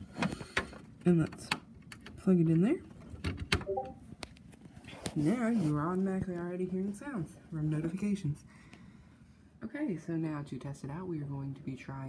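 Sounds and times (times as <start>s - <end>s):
brief tone: 3.7s - 4.0s.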